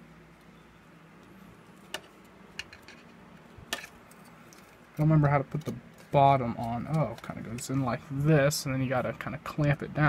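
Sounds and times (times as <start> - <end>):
faint low hum: 0.0 - 10.0
light clicks of metal and plastic parts: 1.2 - 7.9.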